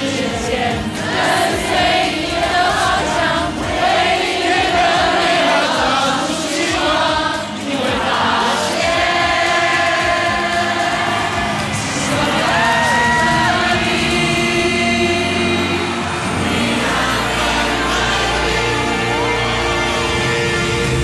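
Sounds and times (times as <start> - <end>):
backing band: 0.0 - 21.0
mass choir singing pop song: 0.0 - 21.0.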